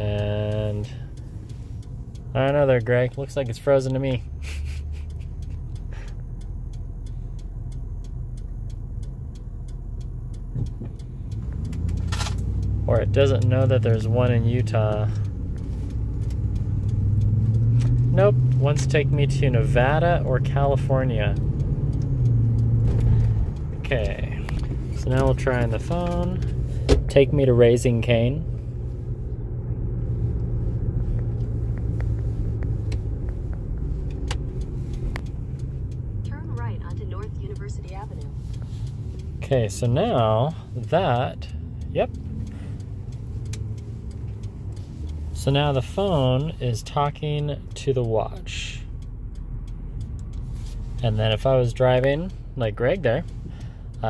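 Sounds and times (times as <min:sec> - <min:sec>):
car cabin rumble: 0:00.0 - 0:54.0
faint regular ticking: 0:00.0 - 0:54.0.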